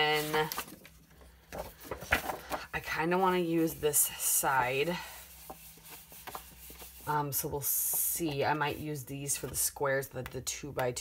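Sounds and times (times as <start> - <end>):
paper sheets rubbing: 0.0 - 0.8, 1.6 - 9.0.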